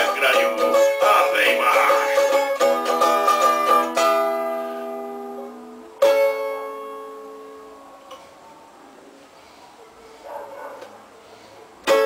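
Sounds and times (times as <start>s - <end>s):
small string instrument strummed: 0.0s - 8.3s.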